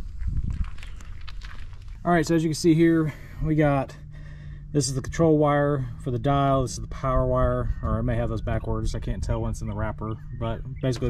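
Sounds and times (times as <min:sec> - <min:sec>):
footsteps in a boat: 0:00.0 - 0:02.0.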